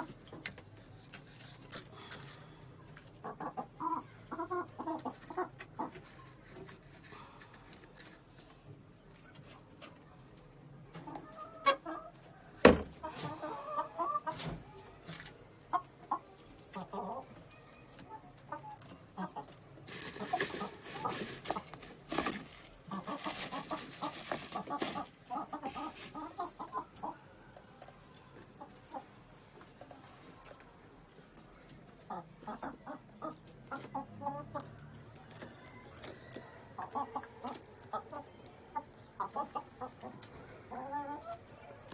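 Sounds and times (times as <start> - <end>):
eggs and container rustling: 0.0 - 3.6, 4.6 - 10.0, 18.8 - 26.8
hens clucking: 2.8 - 41.9.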